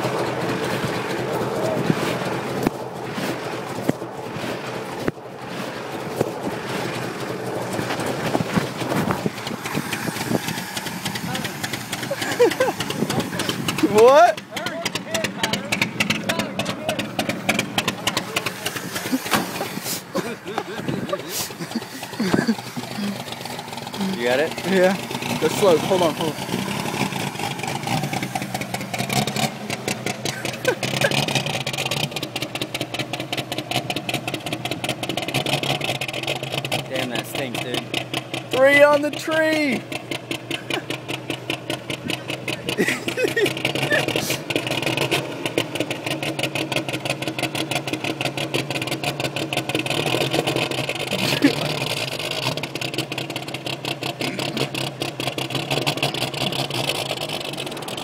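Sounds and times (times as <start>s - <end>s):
truck engine running: 0.0s - 58.0s.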